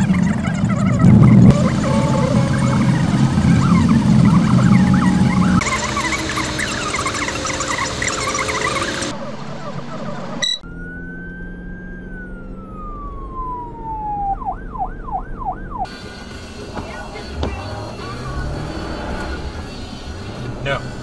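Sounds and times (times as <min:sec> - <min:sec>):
police siren wailing and yelping: 0:00.0 - 0:15.9
music: 0:16.0 - 0:20.4.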